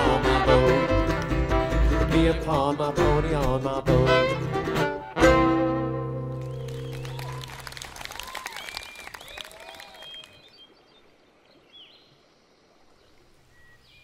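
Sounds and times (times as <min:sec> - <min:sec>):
acoustic string band chord: 0:00.0 - 0:06.6
audience applause: 0:06.4 - 0:10.5
rising and falling calls: 0:06.4 - 0:10.8.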